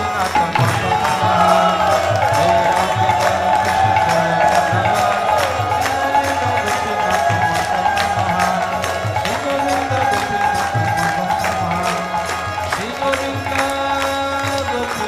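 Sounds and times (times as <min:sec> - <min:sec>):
drum pattern: 0:00.0 - 0:14.8
harmonium tones: 0:00.0 - 0:15.0.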